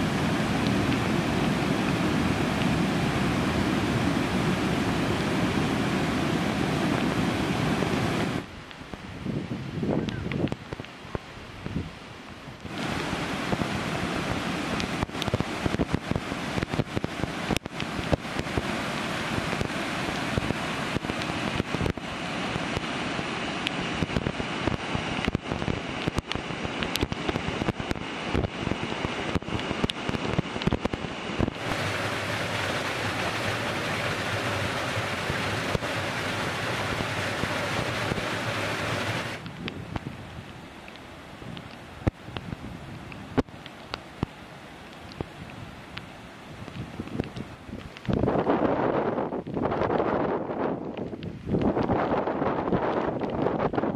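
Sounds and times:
water rushing over rocks: 0:00.0 - 0:53.9
sharp crackles: 0:14.6 - 0:53.9.

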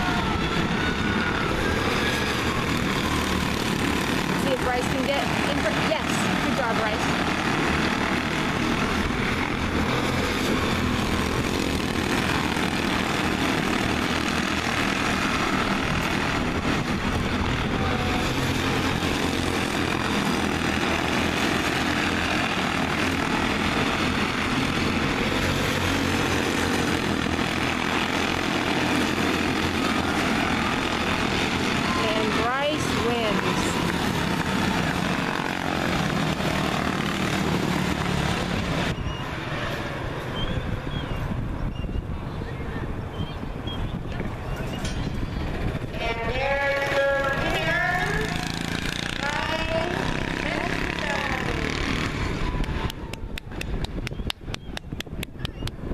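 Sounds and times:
race cars running around a track: 0:00.0 - 0:55.9.

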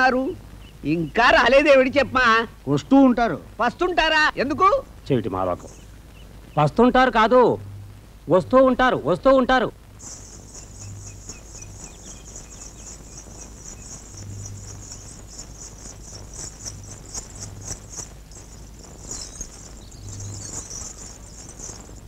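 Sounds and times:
crickets chirring: 0:00.0 - 0:22.0
faint low hum: 0:00.0 - 0:22.0.

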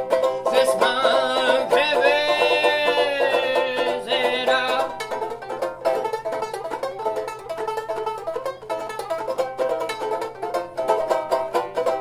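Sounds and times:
banjo ukulele strummed: 0:00.0 - 0:12.0.

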